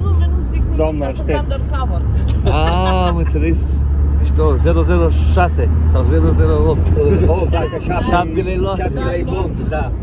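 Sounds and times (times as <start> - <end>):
people laughing and calling out: 2.0 - 3.8
loud drawn-out laugh: 2.3 - 3.6.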